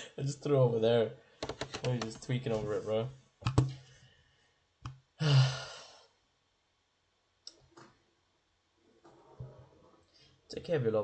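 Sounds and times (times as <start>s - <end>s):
man sighing: 5.2s - 6.1s.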